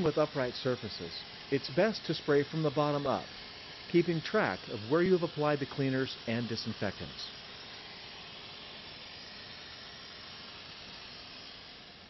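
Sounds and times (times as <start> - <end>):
foam spraying hiss: 0.0 - 11.3.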